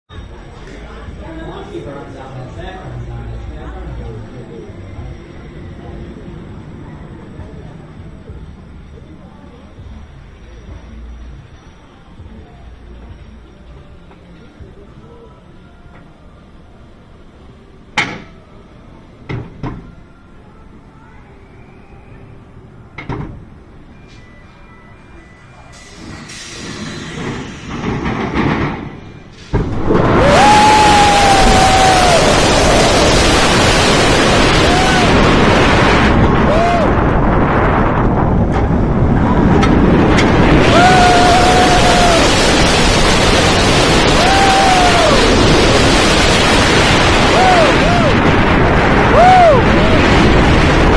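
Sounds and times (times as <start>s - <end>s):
roller coaster wheels roaring on track: 0.1s - 14.7s, 25.8s - 50.9s
roller coaster metal clanks: 26.0s - 31.3s, 37.0s - 41.4s
wind rushing on microphone: 29.6s - 50.9s
riders whooping: 29.8s - 37.5s, 39.0s - 50.9s.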